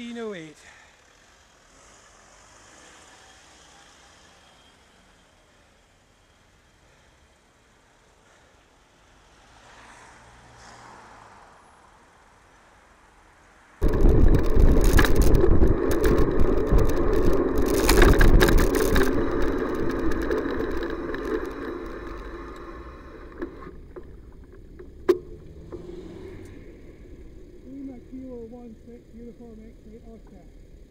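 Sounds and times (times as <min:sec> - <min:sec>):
road rumble: 0:00.0 - 0:30.9
wind buffeting microphone: 0:13.8 - 0:24.2
sharp clicks: 0:13.8 - 0:25.8.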